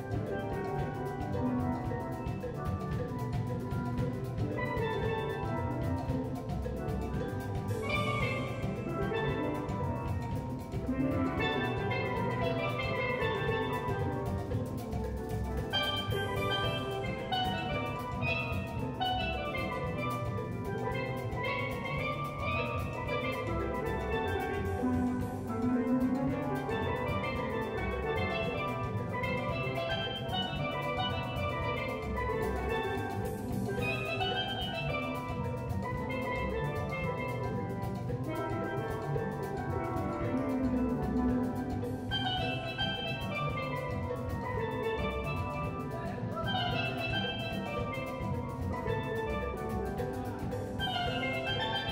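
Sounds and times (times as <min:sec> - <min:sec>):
drum kit and percussion: 0:00.0 - 0:51.9
steel band playing: 0:00.0 - 0:51.9.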